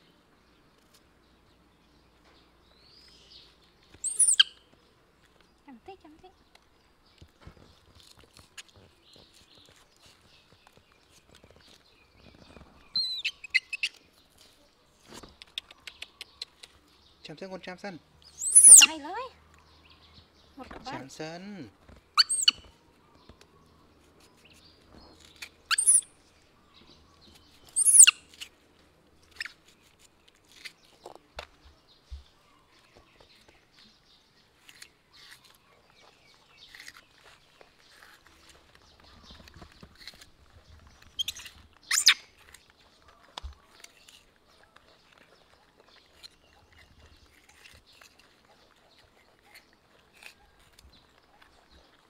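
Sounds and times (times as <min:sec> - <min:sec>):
baby monkey squeaky calls: 0:04.0 - 0:04.6, 0:13.0 - 0:14.0, 0:18.3 - 0:19.1, 0:22.2 - 0:22.7, 0:25.7 - 0:26.1, 0:27.7 - 0:28.4, 0:41.2 - 0:42.3
high chirps: 0:04.0 - 0:04.6, 0:18.3 - 0:19.0, 0:22.2 - 0:22.6, 0:25.7 - 0:26.1, 0:27.7 - 0:28.2
knife scraping while peeling: 0:24.0 - 0:26.4, 0:27.3 - 0:28.6, 0:29.2 - 0:31.5, 0:34.6 - 0:45.2, 0:45.8 - 0:51.5.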